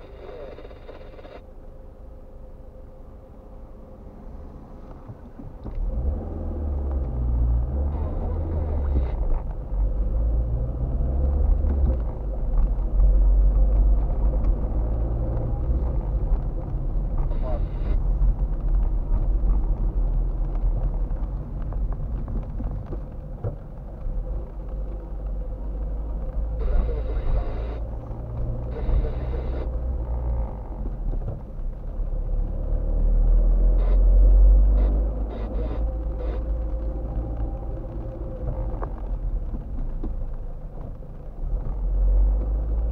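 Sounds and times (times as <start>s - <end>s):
car engine and road noise: 0.0s - 42.9s.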